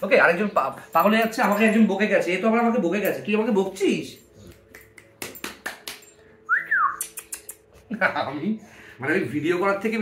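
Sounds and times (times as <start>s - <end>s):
person whistling: 6.5s - 7.2s.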